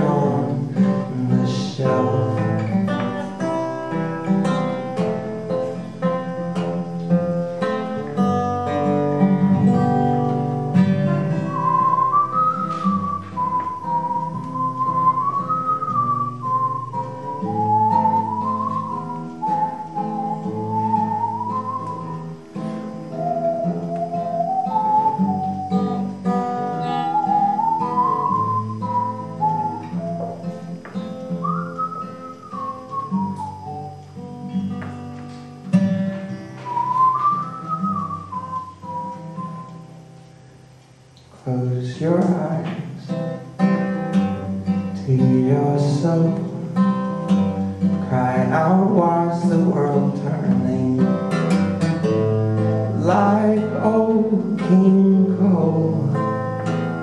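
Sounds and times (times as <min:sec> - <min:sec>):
man whistling a melody: 0:00.0 - 0:35.1, 0:35.7 - 0:40.1, 0:41.5 - 0:57.0
acoustic guitar chords: 0:00.0 - 0:57.0.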